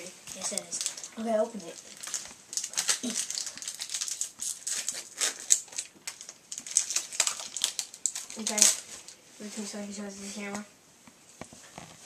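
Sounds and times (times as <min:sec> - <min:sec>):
foil wrapper crinkling and ripping: 0:00.3 - 0:09.2.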